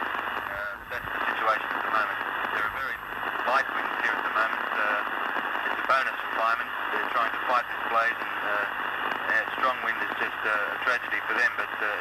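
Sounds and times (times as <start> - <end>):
telephone line hiss: 0.0 - 12.0
man speaking over telephone: 0.4 - 12.0.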